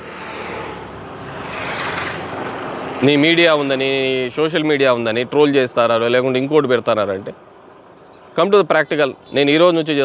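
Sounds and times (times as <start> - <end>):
road vehicle passing: 0.0 - 8.5.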